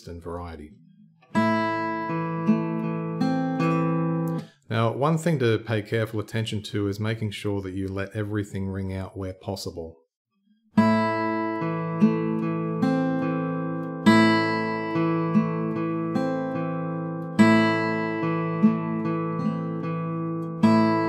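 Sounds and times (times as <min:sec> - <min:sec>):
fingerpicked acoustic guitar: 0:00.8 - 0:04.6, 0:10.5 - 0:21.0.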